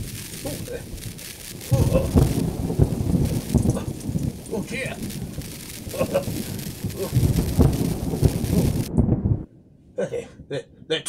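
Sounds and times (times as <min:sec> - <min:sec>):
crackling thunderclap: 0:00.0 - 0:09.5.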